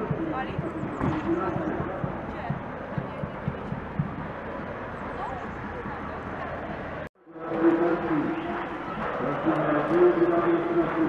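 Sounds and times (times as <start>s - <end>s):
short low thumps: 0.0s - 7.0s
street noise: 0.0s - 11.0s.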